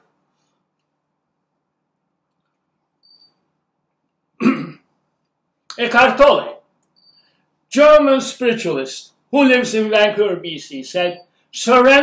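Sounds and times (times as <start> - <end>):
man coughing: 4.4 - 4.9.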